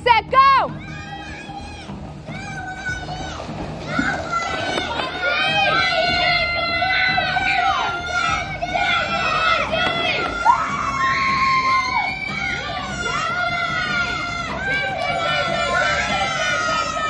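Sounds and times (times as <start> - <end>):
music: 0.0 - 17.0
children shouting and cheering: 0.4 - 17.0.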